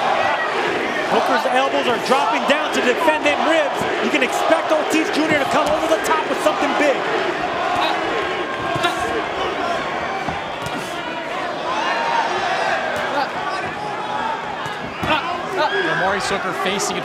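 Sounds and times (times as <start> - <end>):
crowd shouting and cheering: 0.0 - 17.0
punches landing thuds: 7.6 - 9.3, 10.1 - 11.0, 14.6 - 15.4.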